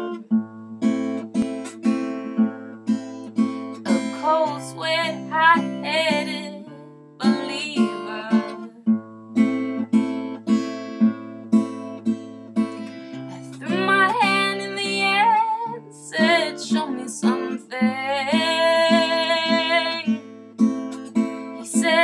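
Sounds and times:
acoustic guitar strumming: 0:00.0 - 0:22.0
wordless vocal with vibrato: 0:04.2 - 0:08.6, 0:13.3 - 0:20.2, 0:21.6 - 0:22.0.

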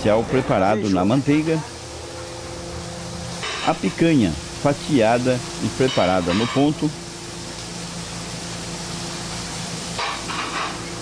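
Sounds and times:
meat sizzling on a griddle: 0:00.6 - 0:11.0.

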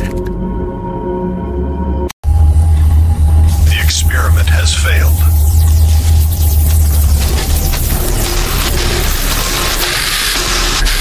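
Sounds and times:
loud steady low hum: 0:02.2 - 0:10.9
person speaking: 0:03.5 - 0:05.4.

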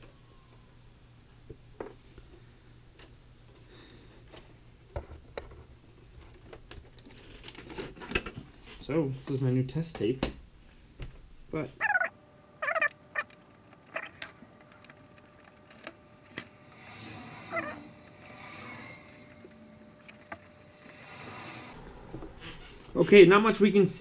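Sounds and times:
quiet mechanism whirr: 0:08.8 - 0:24.0
mumbled voice: 0:11.8 - 0:12.9.

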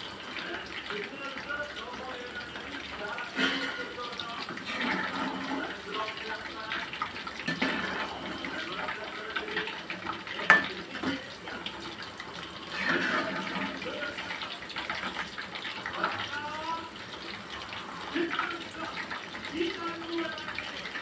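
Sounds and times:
food deep-frying in hot oil: 0:00.0 - 0:21.0
spoon clinking against pan: 0:10.4 - 0:10.8
metal spoon stirring: 0:10.5 - 0:10.7.

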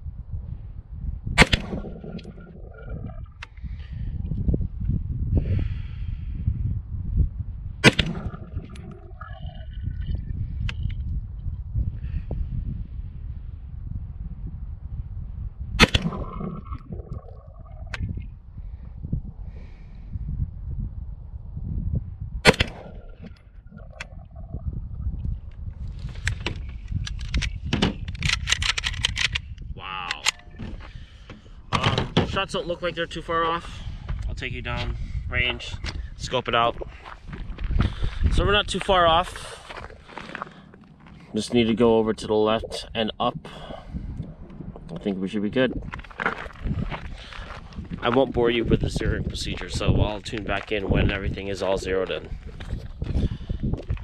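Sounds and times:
gunshots: 0:01.4 - 0:02.4, 0:07.8 - 0:08.6, 0:15.8 - 0:16.6, 0:22.5 - 0:23.2
gun handling clicks and rattles: 0:26.0 - 0:30.8.

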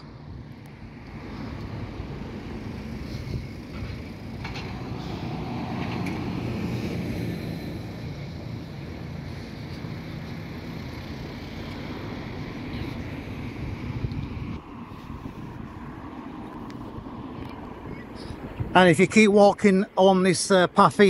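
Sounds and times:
vehicle passing close by: 0:00.0 - 0:18.9
cars running along street: 0:00.0 - 0:21.0.

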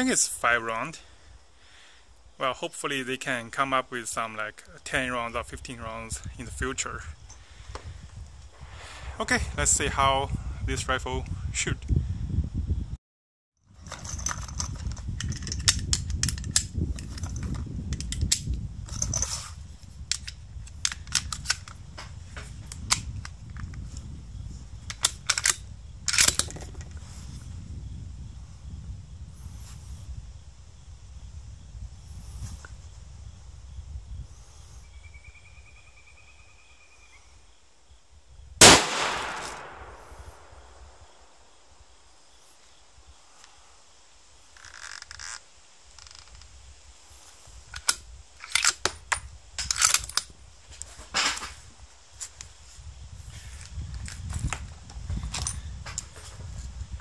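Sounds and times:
sharp clicks and cracks: 0:14.2 - 0:18.6, 0:20.1 - 0:21.8, 0:22.7 - 0:23.8, 0:24.9 - 0:26.8, 0:38.6 - 0:40.5, 0:47.7 - 0:50.3
rifle shot with ringing echo: 0:38.6 - 0:40.9.

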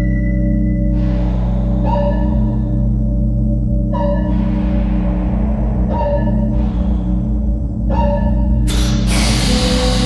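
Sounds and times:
low vocal drone: 0:08.6 - 0:10.0.

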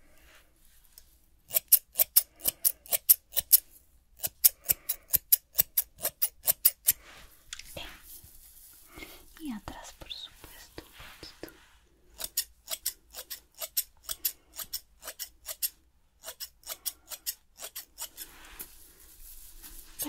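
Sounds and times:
scissors snipping hair: 0:01.5 - 0:03.6, 0:04.2 - 0:07.6, 0:12.2 - 0:18.2.

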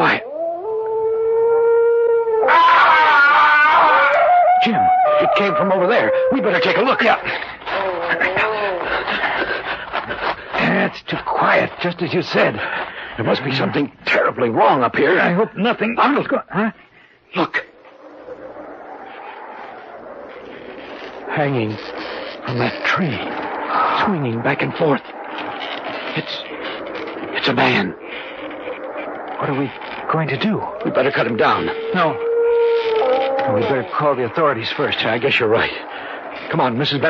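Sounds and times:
shrill wavering scream: 0:00.0 - 0:09.0, 0:17.4 - 0:37.0.

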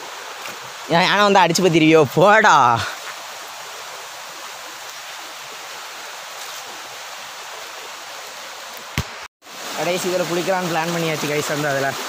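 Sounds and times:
fast-flowing stream rushing: 0:00.0 - 0:12.0.

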